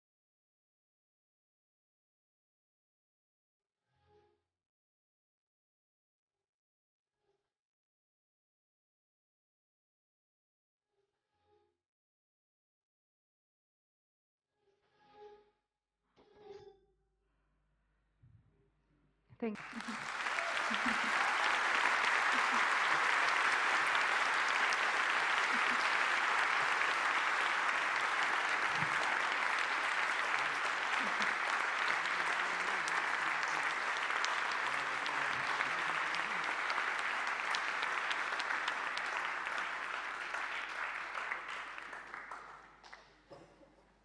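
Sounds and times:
audience applauding: 0:19.5 - 0:43.4.

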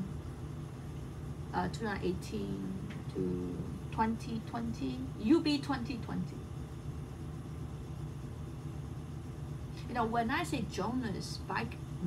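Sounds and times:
low hum with faint hiss: 0:00.0 - 0:12.0.

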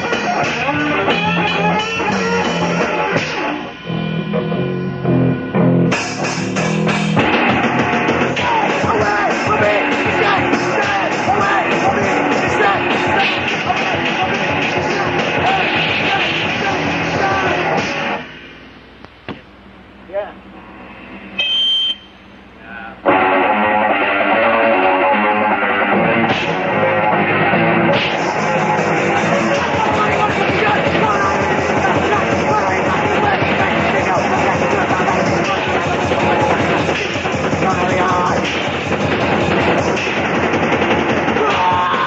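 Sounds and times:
punk rock song with electric guitar: 0:00.0 - 0:18.2, 0:23.0 - 0:42.0
brief high steady tone: 0:21.3 - 0:22.3.

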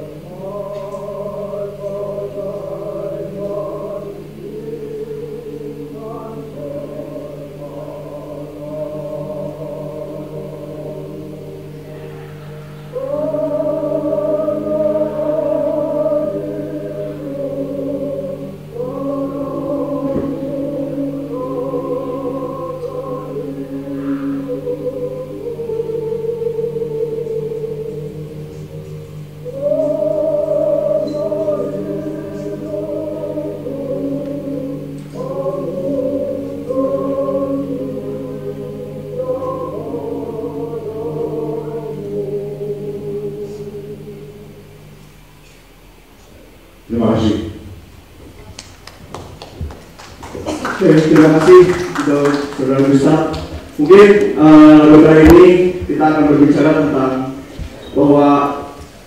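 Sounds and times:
choral singing: 0:00.0 - 0:47.8, 0:48.8 - 0:59.0
slow choir-like music: 0:00.0 - 0:59.0
steady low drone: 0:00.0 - 0:59.0.

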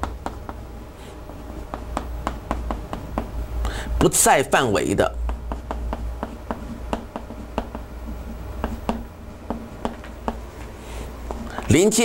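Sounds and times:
chalk tapping and scraping on chalkboard: 0:01.6 - 0:03.4, 0:05.0 - 0:11.7.

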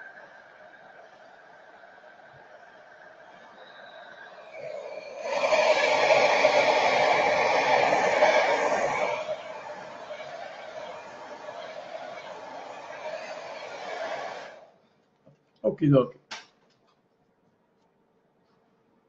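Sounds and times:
rush of blown air: 0:00.0 - 0:14.8.

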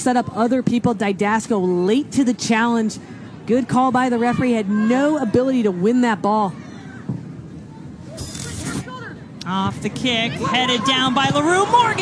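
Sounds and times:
stadium crowd ambience: 0:00.0 - 0:12.0.

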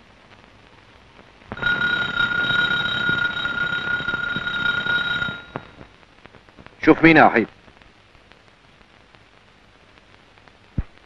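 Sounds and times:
electric doorbell ringing: 0:01.6 - 0:05.7.

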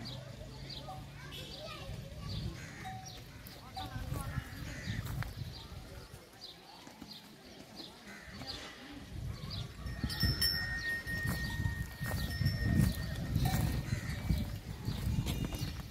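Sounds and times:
hoof steps and shuffling: 0:02.8 - 0:15.9.

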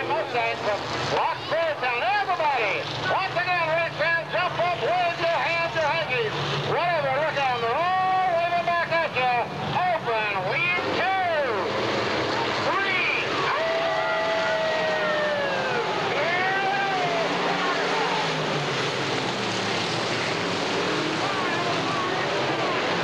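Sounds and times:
race car engines: 0:00.0 - 0:23.0.

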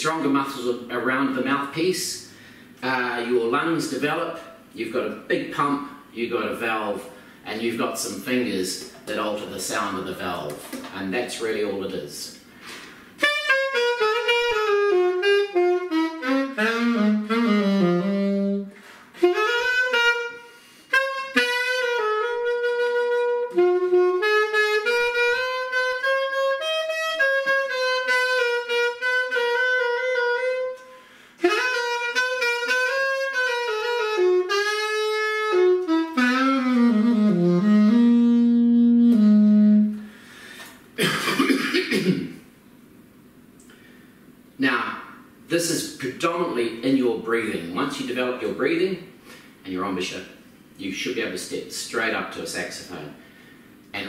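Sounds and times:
alto saxophone solo: 0:13.2 - 0:40.6.

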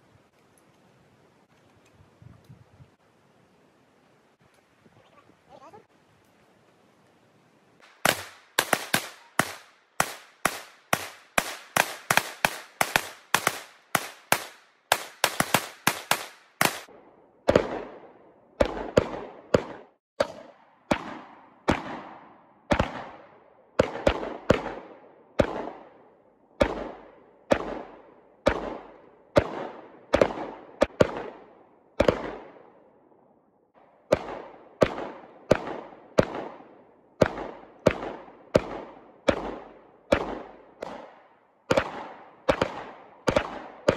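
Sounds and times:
shotgun blasts with echo: 0:07.8 - 0:32.8, 0:33.7 - 0:43.9.

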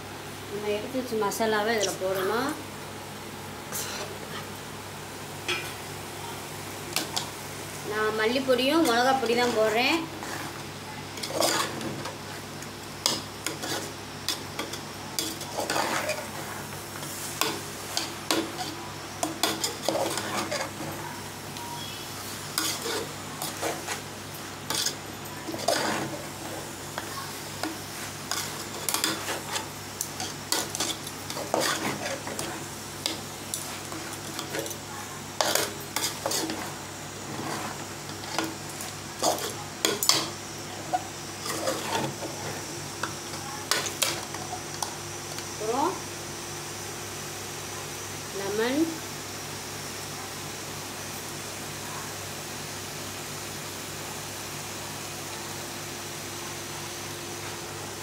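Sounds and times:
frying sizzle: 0:00.0 - 0:58.0
metal spoon scraping a pot: 0:11.2 - 0:11.8, 0:18.0 - 0:20.9, 0:22.6 - 0:24.0, 0:24.7 - 0:26.2, 0:28.3 - 0:34.7, 0:35.4 - 0:36.7.

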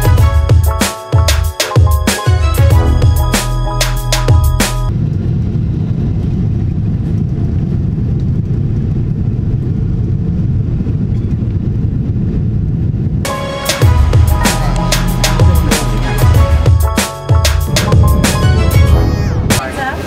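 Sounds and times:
background music: 0:00.0 - 0:04.9, 0:13.3 - 0:20.0
jet engine rumble inside cabin: 0:04.9 - 0:13.3.

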